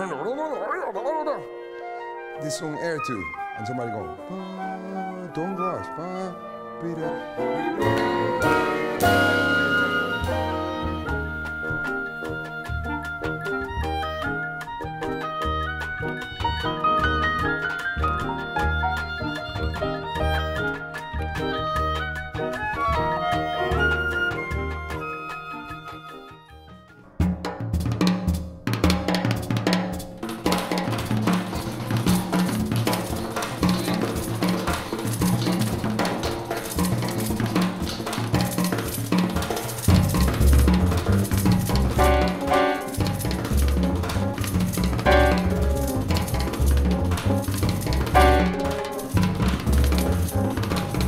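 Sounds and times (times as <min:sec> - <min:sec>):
hand drums: 0:07.4 - 0:26.1, 0:27.2 - 0:51.0
drum kit with cymbals: 0:07.7 - 0:12.0, 0:27.2 - 0:51.0.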